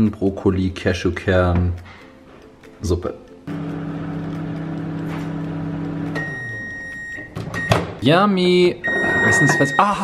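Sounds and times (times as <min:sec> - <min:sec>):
microwave oven humming: 0:03.5 - 0:06.8
high steady beep: 0:06.2 - 0:07.8, 0:08.8 - 0:10.0.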